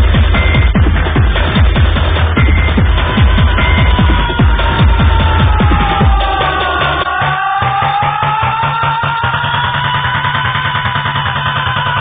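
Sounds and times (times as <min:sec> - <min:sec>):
techno music with held synth tones: 0:00.0 - 0:12.0.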